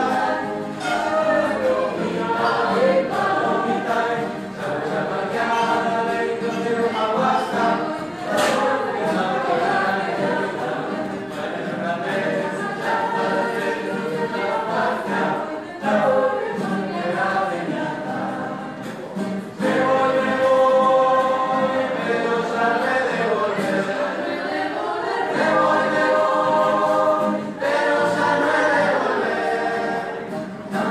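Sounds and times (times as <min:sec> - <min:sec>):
mixed choir singing a cappella: 0:00.0 - 0:30.9.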